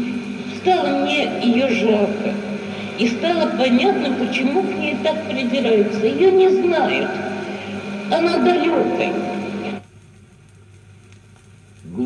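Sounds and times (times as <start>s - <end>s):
woman speaking on record: 0.0s - 9.8s
low hum: 0.0s - 12.0s
vinyl surface noise with ticks: 8.1s - 12.0s.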